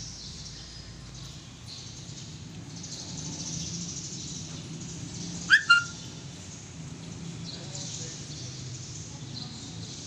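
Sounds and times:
bird chirping: 5.2s - 6.2s.

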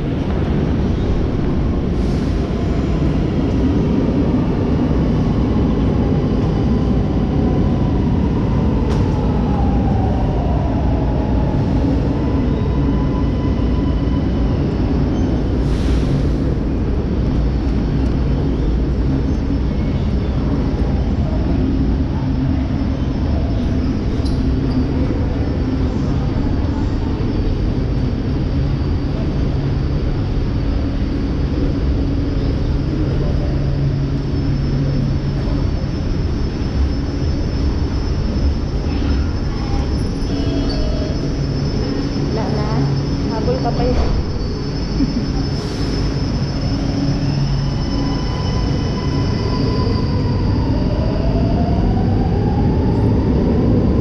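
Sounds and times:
low rumble of metro station: 0.0s - 54.0s.

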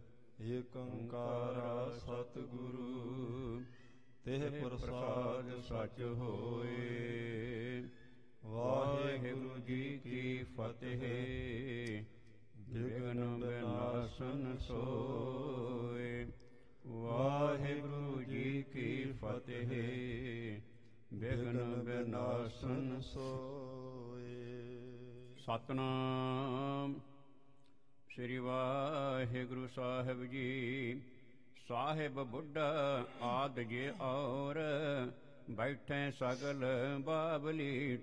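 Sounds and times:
man chanting: 0.4s - 27.0s, 28.1s - 38.0s.

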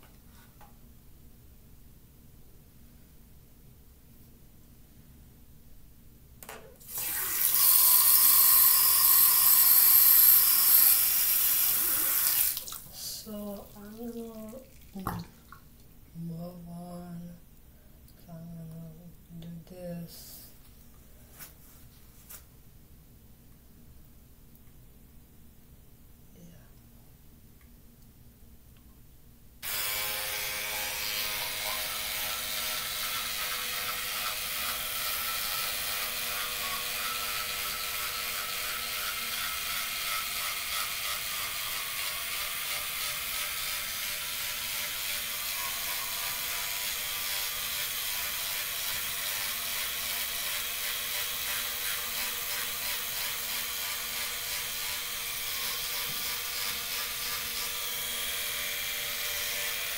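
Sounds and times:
electric toothbrush running: 6.9s - 12.6s, 29.6s - 59.9s.

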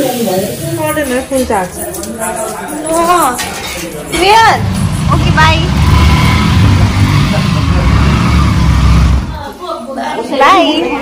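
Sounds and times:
motorcycle engine rumbling: 4.0s - 9.5s.

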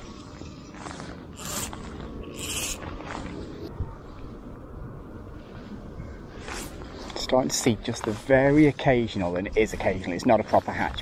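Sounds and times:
wind rumbling on microphone: 0.0s - 11.0s
fly line hissing scrapes: 0.8s - 3.4s.

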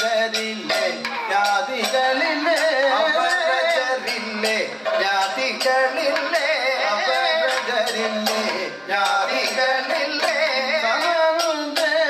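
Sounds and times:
person singing ornamented melody: 0.0s - 12.0s
sharp percussion strikes: 0.0s - 12.0s.

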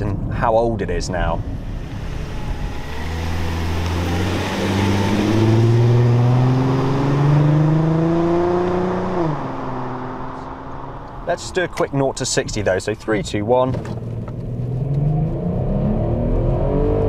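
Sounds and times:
car accelerating past: 1.4s - 11.2s.

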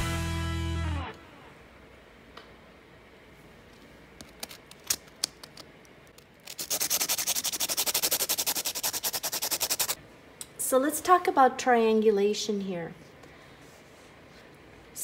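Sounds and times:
pencil scraping on sandpaper: 6.5s - 10.0s.

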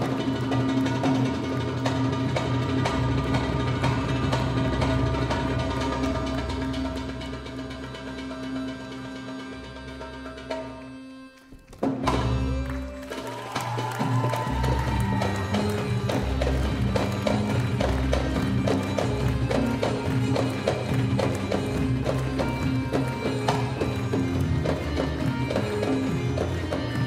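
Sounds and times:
hand drums playing rhythm: 0.0s - 27.0s.

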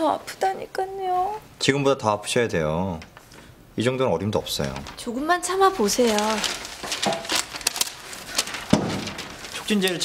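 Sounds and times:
woman speaking: 0.0s - 1.5s, 5.0s - 6.6s.

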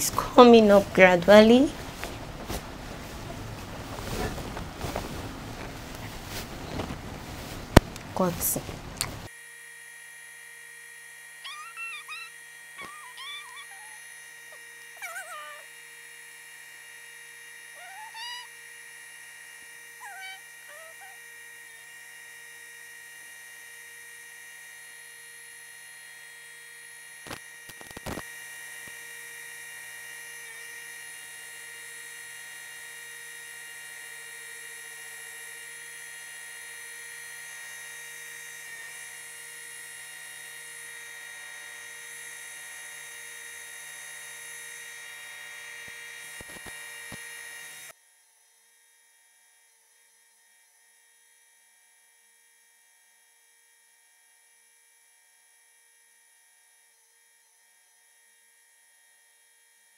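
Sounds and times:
sewing machine whining: 11.2s - 16.1s, 28.2s - 47.9s.

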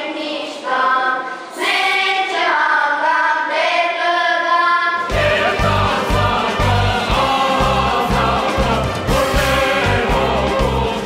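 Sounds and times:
children's choir singing: 0.0s - 11.0s
choir with pulsing low beat: 5.0s - 11.0s.

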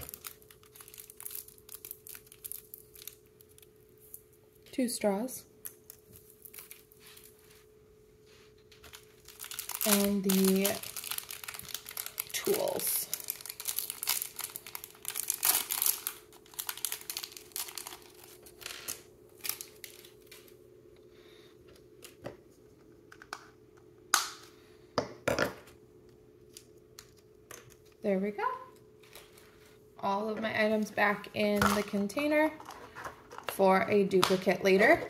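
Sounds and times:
plastic packaging crinkling and tearing: 0.0s - 4.3s, 5.6s - 7.6s, 8.7s - 20.6s.

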